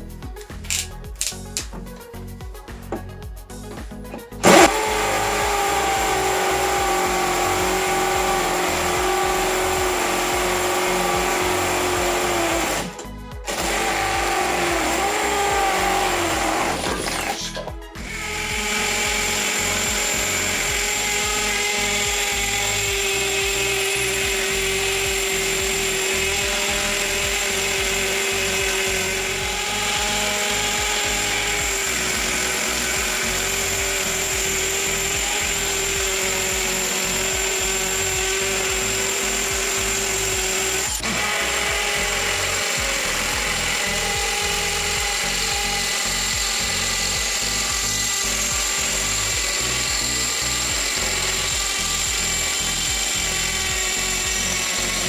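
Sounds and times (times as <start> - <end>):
hammer drill boring into masonry: 0.7 - 1.6, 4.1 - 55.0.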